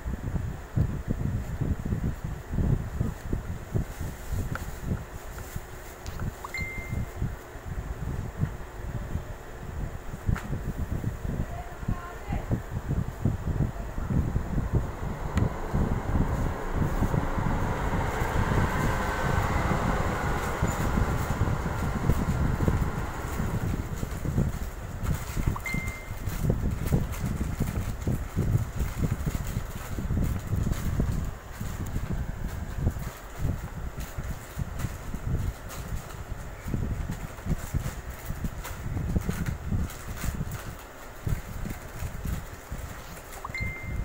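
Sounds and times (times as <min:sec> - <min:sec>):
low microphone rumble: 0:00.0 - 0:44.0.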